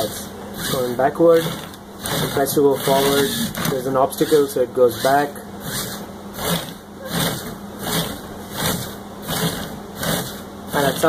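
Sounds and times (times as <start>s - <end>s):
small motors whirring: 0.0s - 11.0s.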